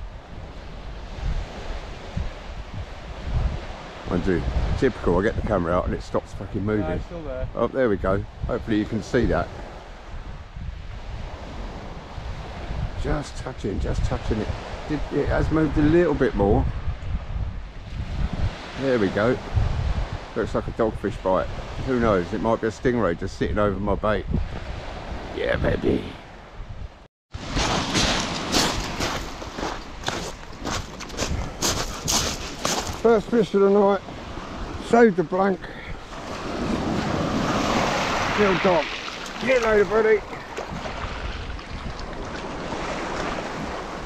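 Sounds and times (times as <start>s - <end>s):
surf washing on beach: 0.0s - 23.2s, 27.4s - 44.0s
wind rumbling on microphone: 0.0s - 44.0s
footsteps crunching on beach: 27.4s - 33.4s.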